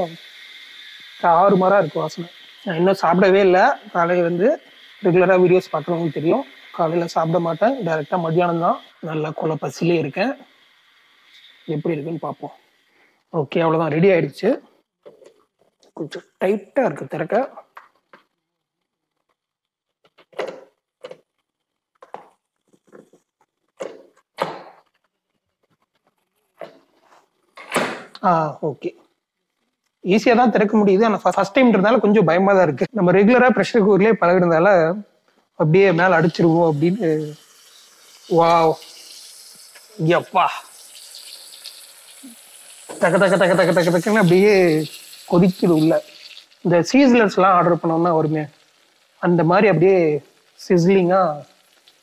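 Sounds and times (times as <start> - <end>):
okra sizzling in a pot: 0.0 - 52.0.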